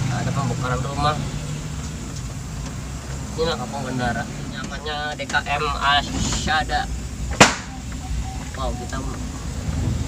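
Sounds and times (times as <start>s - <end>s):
car engine hum from cabin: 0.0s - 10.0s.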